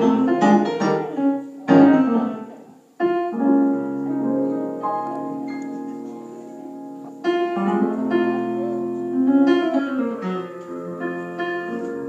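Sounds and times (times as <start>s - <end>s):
electric keyboard chords: 0.0s - 12.0s.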